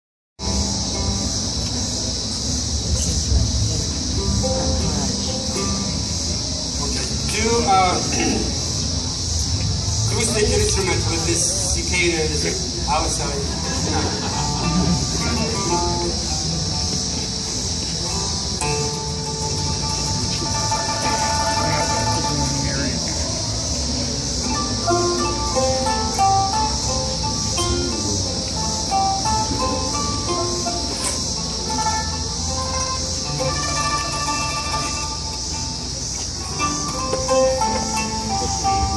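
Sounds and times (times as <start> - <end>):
cicadas droning: 0.4 - 38.9
plucked oud notes: 3.0 - 38.9
man speaking: 6.8 - 8.6, 10.1 - 13.7
man clearing his throat: 8.1 - 8.6.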